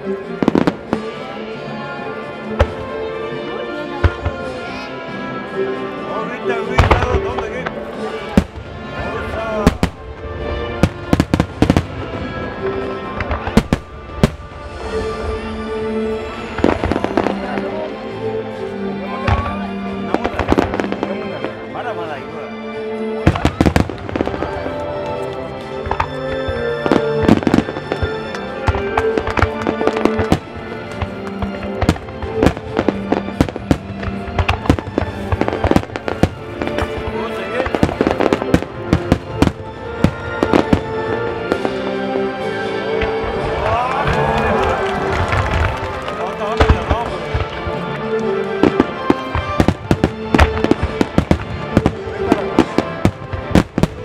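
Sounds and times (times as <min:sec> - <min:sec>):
background music with sustained tones: 0:00.0 - 0:54.0
fireworks bursting: 0:06.6 - 0:18.0, 0:19.2 - 0:21.6, 0:23.2 - 0:42.0, 0:42.6 - 0:54.0.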